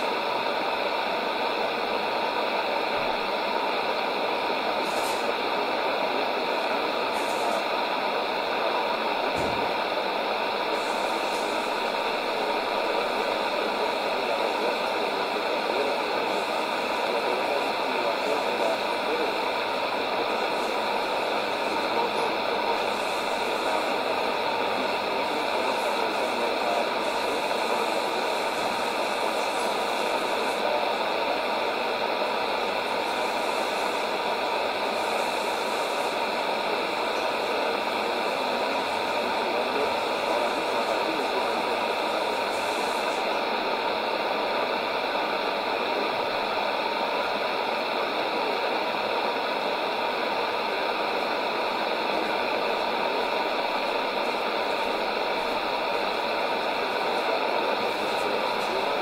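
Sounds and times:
shortwave radio hiss and static: 0.0 - 59.0.

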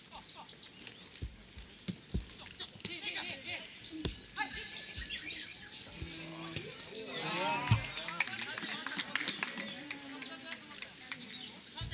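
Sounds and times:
players shouting: 2.4 - 8.8
rising shout: 6.2 - 8.1.

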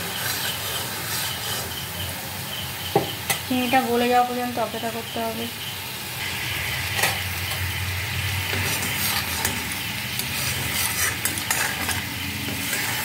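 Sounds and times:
metal spatula scraping pan: 0.0 - 2.1, 6.7 - 13.0
liquid bubbling and sizzling in wok: 0.0 - 13.0.

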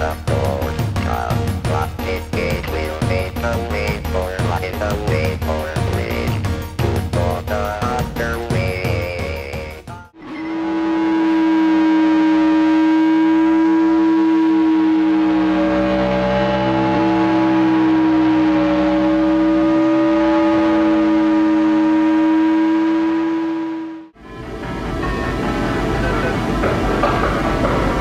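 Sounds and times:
harsh siren-like noise drone: 10.2 - 28.0.

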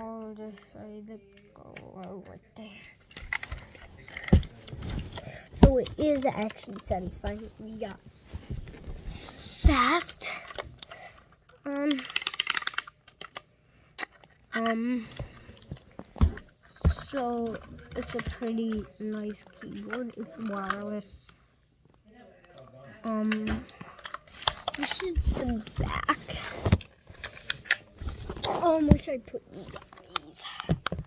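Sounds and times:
plastic keyboard handling clicks: 11.7 - 13.4, 16.9 - 21.0.

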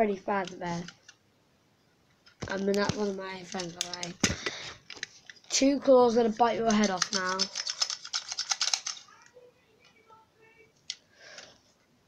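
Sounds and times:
plastic toy claw clacking: 3.6 - 4.2, 6.6 - 9.2.

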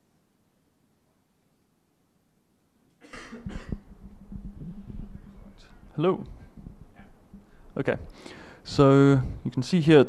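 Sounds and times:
breathy microphone noise: 3.0 - 9.8
steady low hum: 3.0 - 10.0
fingers knocking on microphone: 3.4 - 7.6.

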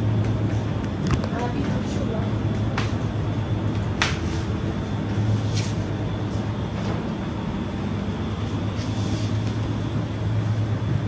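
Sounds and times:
refrigeration hum and hiss: 0.0 - 11.0.

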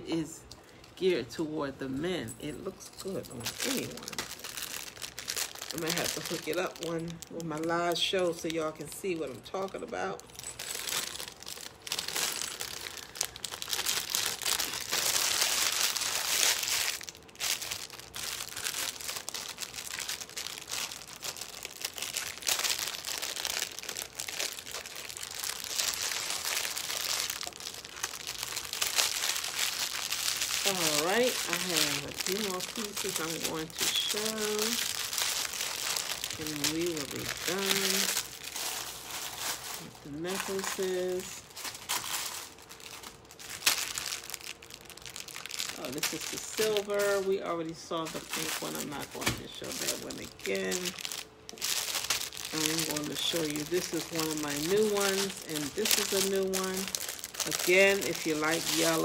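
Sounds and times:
plastic bags crinkling: 0.1 - 59.0.

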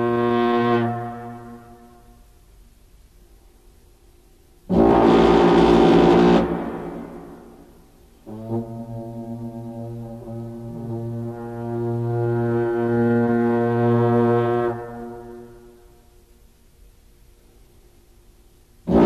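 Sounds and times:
long horns blasting: 0.0 - 1.9, 4.7 - 7.4, 8.2 - 15.6
long low horn note: 0.0 - 2.1, 4.7 - 7.4, 8.2 - 15.8.

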